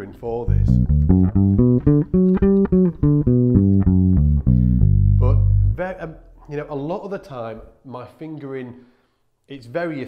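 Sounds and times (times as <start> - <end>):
electric bass arpeggio: 0.5 - 6.5.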